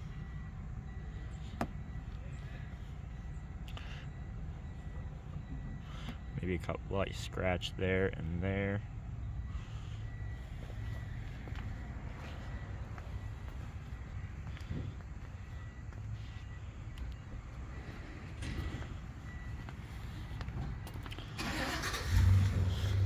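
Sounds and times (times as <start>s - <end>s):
low outdoor rumble: 0.0s - 23.0s.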